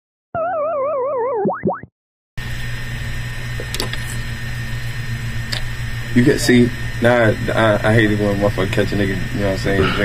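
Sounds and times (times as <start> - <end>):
cartoon boing sound effect: 0.4 - 1.9
small room hum: 2.4 - 10.0.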